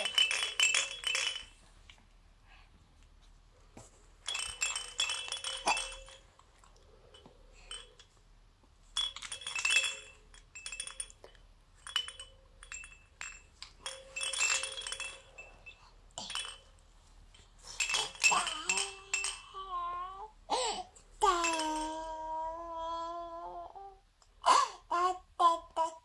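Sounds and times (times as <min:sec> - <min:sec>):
toy bells jingling: 0:00.0 - 0:01.7, 0:04.2 - 0:08.2, 0:08.8 - 0:22.7.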